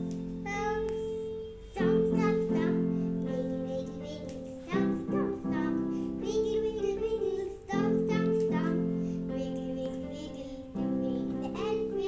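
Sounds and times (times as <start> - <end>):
boy singing: 0.4 - 12.0.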